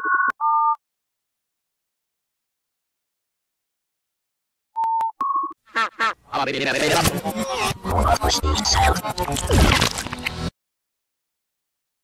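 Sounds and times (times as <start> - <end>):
robotic voice: 5.8 - 10.5.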